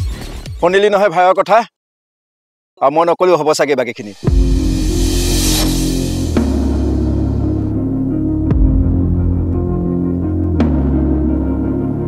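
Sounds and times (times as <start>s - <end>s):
deep drum hit: 4.2s - 7.6s
dark low music drone: 4.2s - 12.0s.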